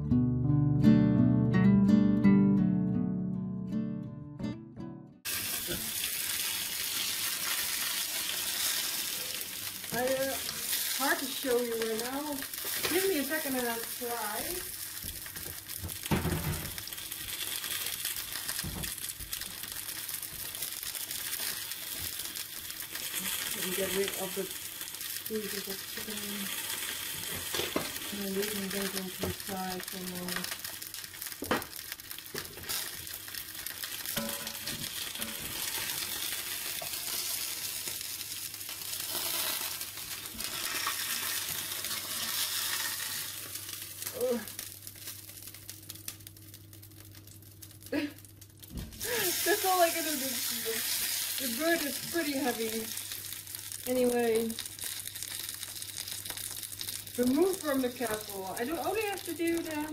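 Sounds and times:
chicken sizzling in a pot: 0:05.2 - 0:59.9.

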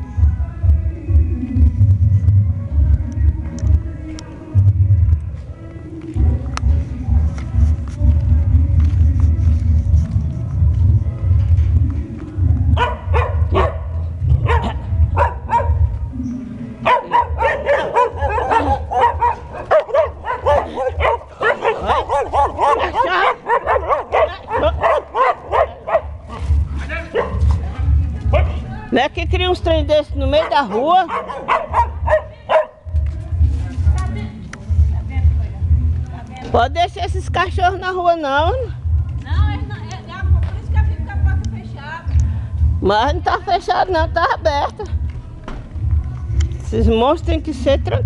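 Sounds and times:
funk music with heavy bass: 0:00.0 - 0:48.0
dogs barking: 0:12.7 - 0:16.0, 0:16.8 - 0:28.7, 0:30.2 - 0:32.9.

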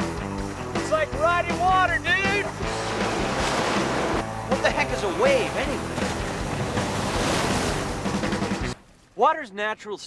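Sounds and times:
background music: 0:00.0 - 0:09.0
ocean surf breaking: 0:01.5 - 0:08.8.

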